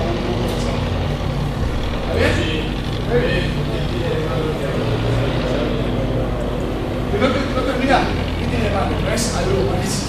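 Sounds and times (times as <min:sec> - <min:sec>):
room noise rumble and hum: 0:00.0 - 0:10.0.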